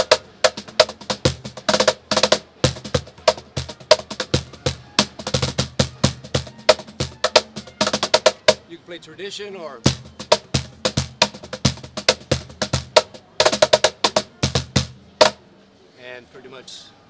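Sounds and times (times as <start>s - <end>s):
cajon played by hand: 0.0s - 8.6s, 9.8s - 15.4s.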